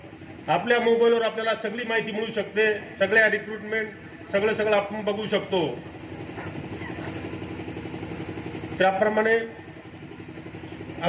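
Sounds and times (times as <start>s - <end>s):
small engine idling: 0.0s - 11.0s
man's voice through loudspeaker: 0.4s - 5.9s, 8.7s - 9.7s.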